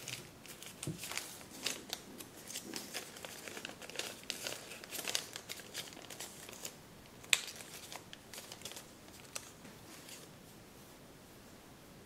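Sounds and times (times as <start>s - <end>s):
paper rustling and crinkling: 0.0s - 10.3s
sharp paper crackle: 0.0s - 10.3s.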